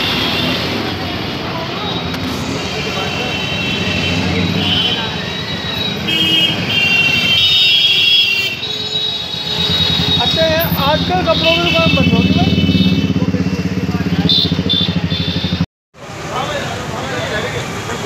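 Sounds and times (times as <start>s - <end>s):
passing motorbikes and traffic: 0.0s - 18.0s
crowd voices chattering: 16.0s - 18.0s.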